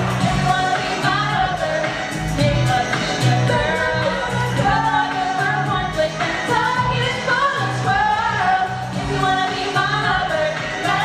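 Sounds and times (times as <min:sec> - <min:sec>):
backing music with bass beat: 0:00.0 - 0:11.0.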